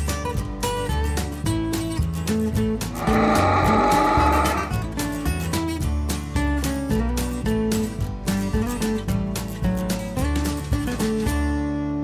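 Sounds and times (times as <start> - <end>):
strummed acoustic guitar music: 0.0 - 12.0.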